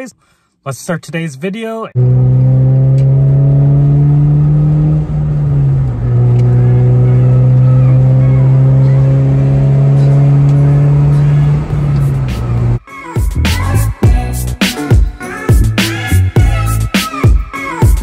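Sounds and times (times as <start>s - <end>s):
car engine accelerating: 1.9s - 12.8s.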